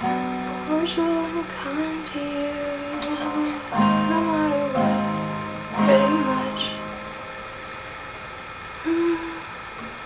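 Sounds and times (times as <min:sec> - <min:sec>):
faint room hiss: 0:00.0 - 0:10.0
woman humming: 0:05.8 - 0:06.8, 0:08.8 - 0:09.6.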